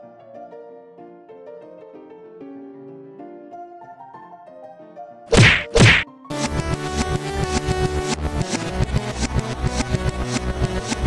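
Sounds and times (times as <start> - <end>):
loud sudden hits: 5.3 - 7.7
loud electronic music: 5.3 - 11.0.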